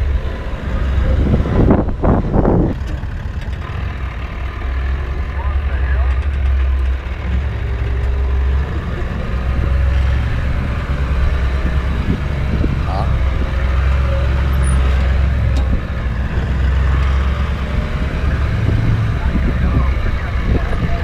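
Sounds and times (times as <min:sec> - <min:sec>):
vehicle engine rumble: 0:00.0 - 0:21.0.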